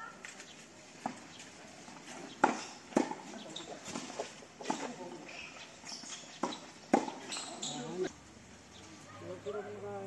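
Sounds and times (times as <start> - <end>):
voices: 0.0 - 10.0
tennis rackets striking ball: 2.4 - 3.3, 6.1 - 7.7.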